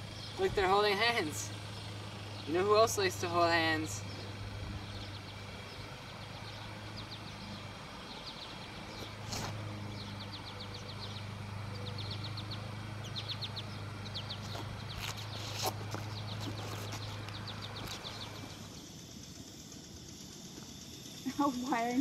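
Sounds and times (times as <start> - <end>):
steady low hum: 0.0 - 22.0
brief rustle: 9.0 - 9.6.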